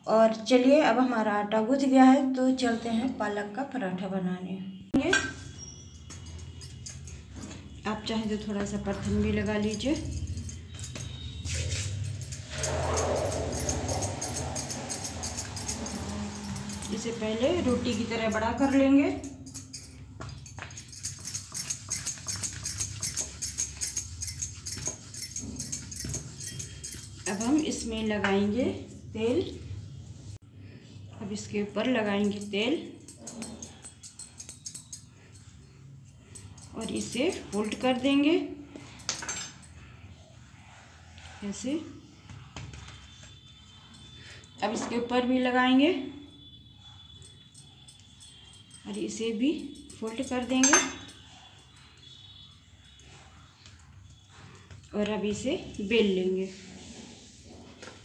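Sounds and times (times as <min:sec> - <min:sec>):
spoon scraping on dough: 0:20.8 - 0:28.2.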